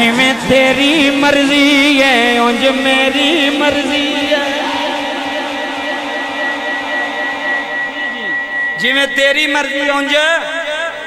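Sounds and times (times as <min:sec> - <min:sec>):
man singing through loudspeaker: 0:00.0 - 0:11.0
high-pitched tone: 0:00.5 - 0:11.0.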